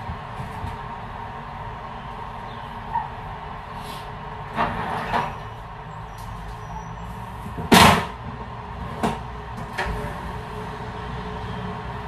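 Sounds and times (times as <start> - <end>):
sliding window frame scrape and knock: 4.5 - 5.5.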